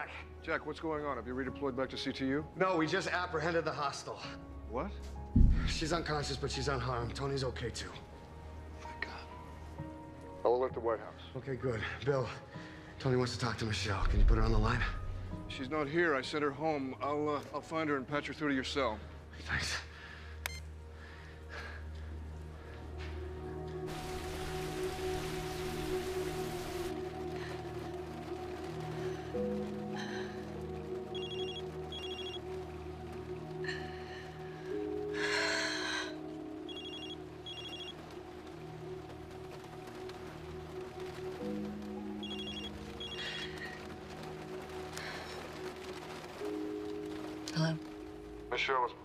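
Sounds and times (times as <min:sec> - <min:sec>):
quiet sustained music: 0:00.0 - 0:49.0
telephone ringing: 0:31.1 - 0:32.4, 0:36.7 - 0:38.0, 0:42.2 - 0:43.3
phone beep: 0:31.2 - 0:32.4, 0:36.7 - 0:38.0, 0:42.2 - 0:43.2.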